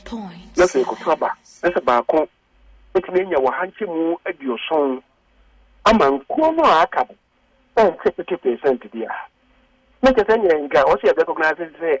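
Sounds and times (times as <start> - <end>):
man talking over telephone: 0.6 - 2.3, 3.0 - 5.0, 5.9 - 7.2, 7.8 - 9.3, 10.0 - 12.0.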